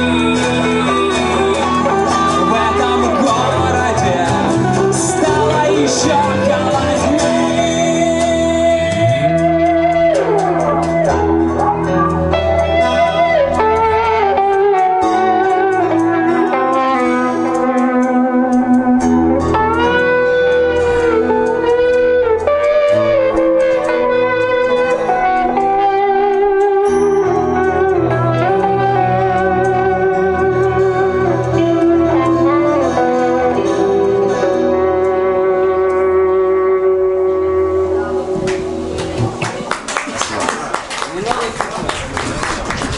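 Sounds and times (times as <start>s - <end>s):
audience clapping: 0.0s - 3.7s, 38.5s - 42.9s
live band music: 0.0s - 41.0s
electric guitar sustained notes: 0.0s - 42.9s.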